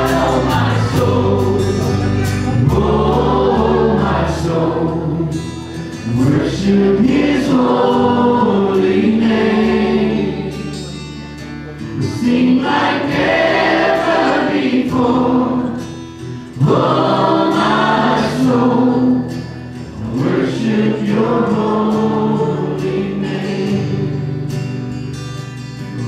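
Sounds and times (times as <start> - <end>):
group singing a worship song: 0.0 - 11.1, 11.9 - 25.0
acoustic guitar and band: 0.0 - 26.0.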